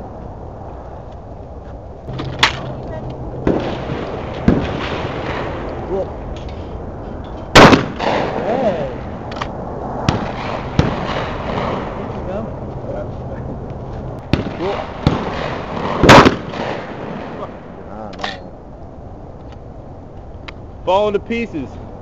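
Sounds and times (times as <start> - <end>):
sharp cracks and knocks: 2.1 - 6.7, 7.3 - 8.4, 9.2 - 11.9, 14.2 - 17.4
shotgun blast: 3.4 - 6.0, 7.5 - 9.1, 10.1 - 12.1, 14.3 - 17.6.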